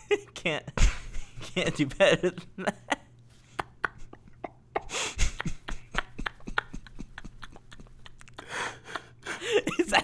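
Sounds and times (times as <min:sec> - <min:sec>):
man laughing quietly: 0:00.0 - 0:10.0.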